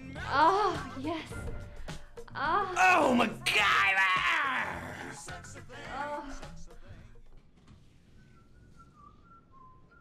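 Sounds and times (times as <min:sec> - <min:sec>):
person whistling a tune: 0:08.2 - 0:10.0.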